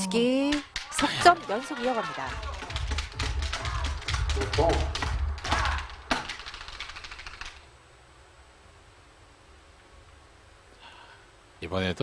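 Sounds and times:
voices calling out: 0.0s - 6.1s
people clapping: 0.4s - 7.6s.

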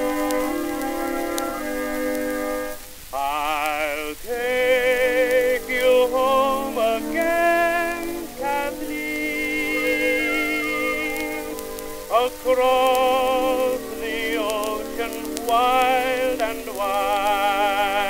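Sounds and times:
record surface hiss: 0.0s - 18.0s
tenor singing with vibrato: 0.0s - 18.0s.

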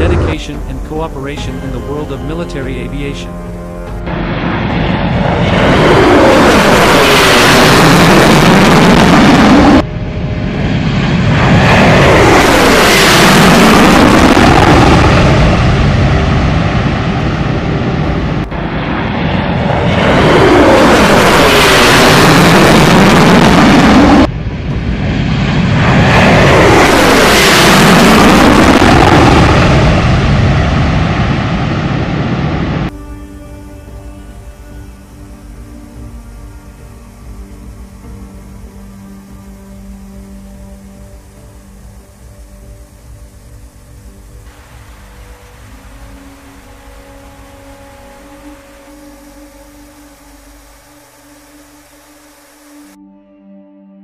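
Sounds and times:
jet engines roaring: 0.0s - 53.0s.

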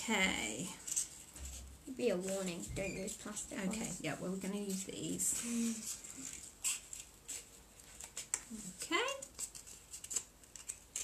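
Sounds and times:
scissors cutting cardboard: 9.2s - 11.0s.

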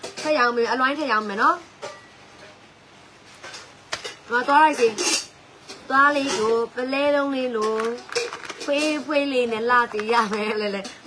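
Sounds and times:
woman talking: 0.2s - 1.7s, 4.3s - 5.2s, 5.8s - 11.0s.

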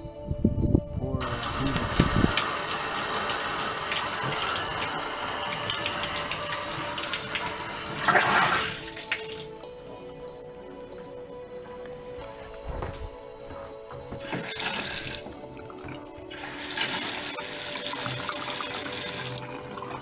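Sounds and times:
water rushing into bathtub: 1.2s - 9.6s.

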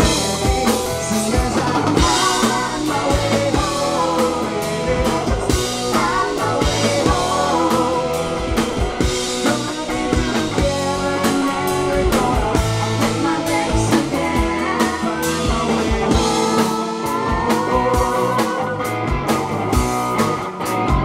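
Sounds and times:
bass guitar: 0.0s - 21.0s
drum kit: 0.0s - 21.0s
electric guitar: 0.0s - 21.0s.

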